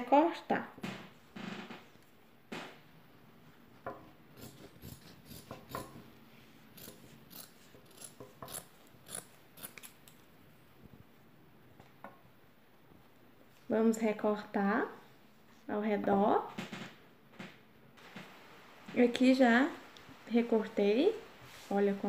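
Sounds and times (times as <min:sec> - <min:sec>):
soft handling of felt: 0:21.3 - 0:22.0.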